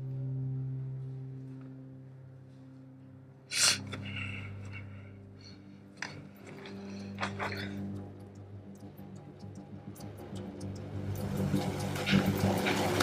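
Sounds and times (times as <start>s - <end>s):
low droning chord: 0.0s - 13.0s.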